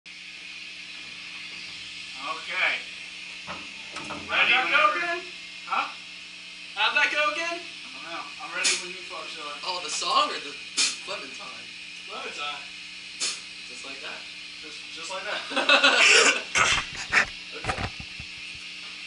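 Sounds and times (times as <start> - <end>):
low electrical hum: 0.1 - 19.0.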